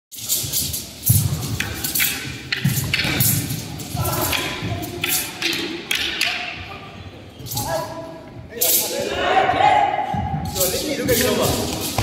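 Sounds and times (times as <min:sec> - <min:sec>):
flexible sword rattling and swishing: 0:00.1 - 0:06.6, 0:07.4 - 0:09.0, 0:10.4 - 0:12.0.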